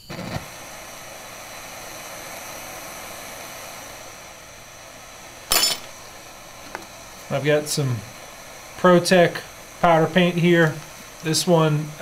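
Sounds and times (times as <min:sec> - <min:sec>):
propane torch hissing: 0:00.0 - 0:12.0.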